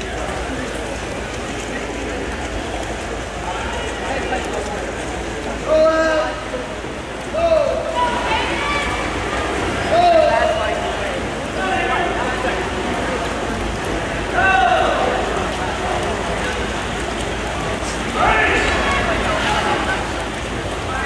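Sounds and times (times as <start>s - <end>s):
echoing crowd noise: 0.0s - 21.0s
spectators shouting encouragement: 14.2s - 15.4s, 18.1s - 21.0s.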